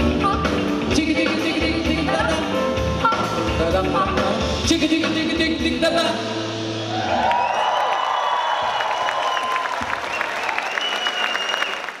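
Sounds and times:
audience applauding and cheering: 6.8s - 12.0s.

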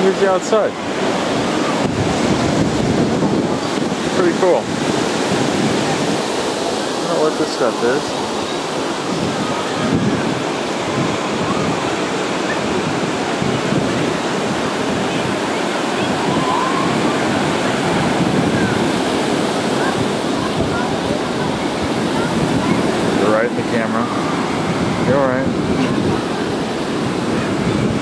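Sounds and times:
ocean surf breaking on beach: 0.0s - 28.0s.

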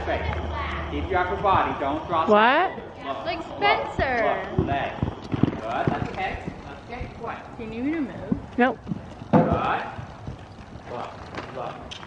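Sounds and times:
horse hooves thudding on sand: 3.9s - 12.0s.

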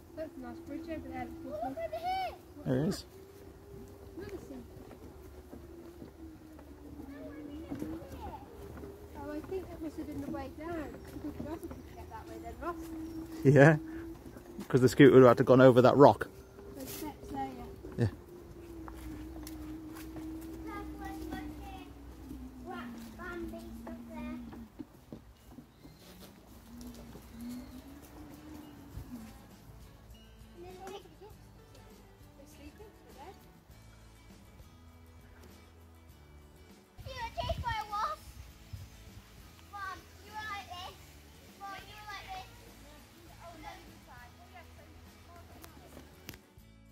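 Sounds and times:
mobility scooter motor whining: 0.0s - 30.1s
child calling out: 1.3s - 2.7s, 19.0s - 24.7s.

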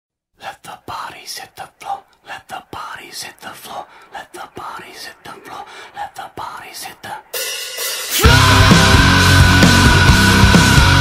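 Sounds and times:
person whispering: 0.4s - 7.4s.

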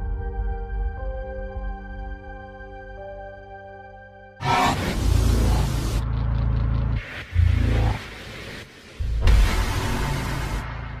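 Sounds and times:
noisy whooshing surges: 4.4s - 6.0s, 6.8s - 11.0s
deep bass rumble: 4.6s - 8.4s.

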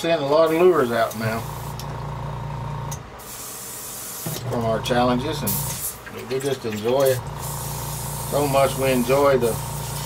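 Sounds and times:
airbrush hissing: 3.2s - 4.4s, 7.3s - 10.0s
steady low hum: 4.4s - 5.8s.

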